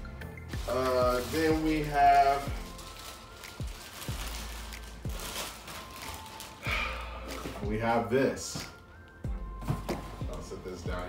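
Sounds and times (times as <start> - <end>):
background music with bass thuds: 0.0 - 3.0, 6.7 - 11.0
plastic bag crinkling: 0.5 - 7.7.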